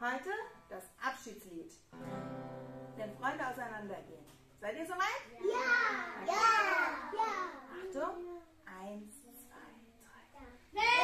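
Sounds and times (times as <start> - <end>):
acoustic guitar chord ringing: 2.0 - 3.4.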